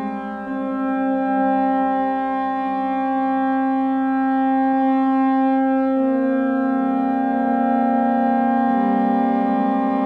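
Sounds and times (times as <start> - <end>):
sustained synthesizer chord: 0.0 - 10.0.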